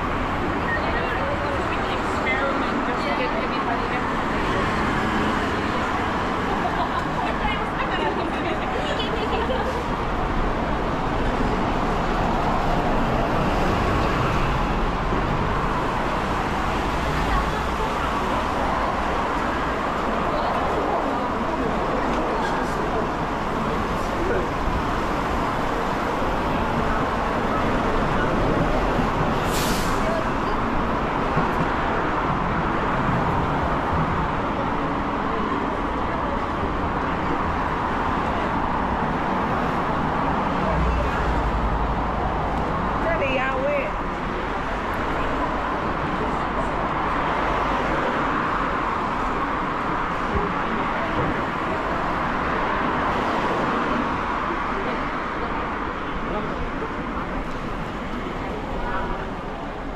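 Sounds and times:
traffic noise: 0:00.0 - 0:59.9
voices of pedestrians: 0:00.0 - 0:59.9.

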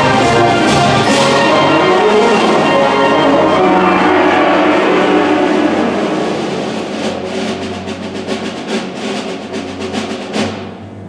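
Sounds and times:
wind band playing: 0:00.0 - 0:10.6.

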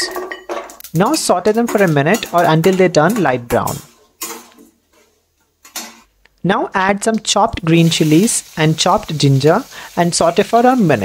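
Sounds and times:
metal spatula clinking on pan: 0:01.5 - 0:03.3.

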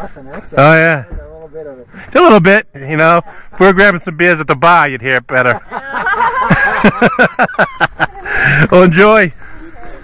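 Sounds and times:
people laughing: 0:03.1 - 0:04.2, 0:05.4 - 0:09.0.

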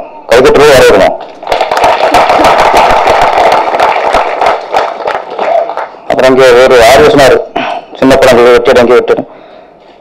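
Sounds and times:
audience applauding: 0:01.2 - 0:06.0.

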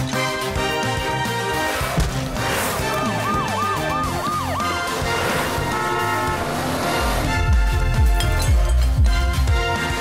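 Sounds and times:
background music: 0:00.0 - 0:10.0
cartoon siren wails: 0:02.8 - 0:06.8.

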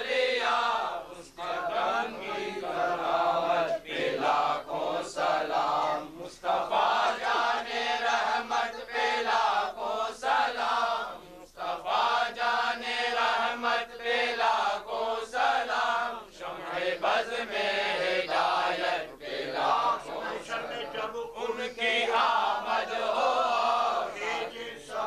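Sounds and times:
men chanting together: 0:00.0 - 0:25.0.

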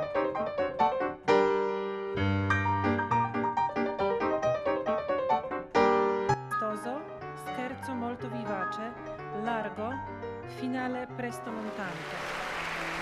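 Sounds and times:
solo piano: 0:00.0 - 0:11.9.

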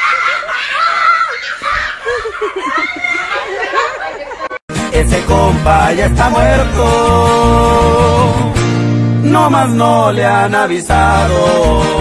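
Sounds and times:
high-pitched human laughter: 0:00.0 - 0:04.6.

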